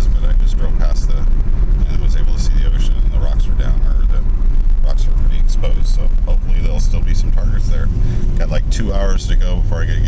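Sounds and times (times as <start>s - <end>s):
man talking: 0.0s - 10.0s
road noise: 0.0s - 10.0s
vehicle engine rumble: 0.0s - 10.0s.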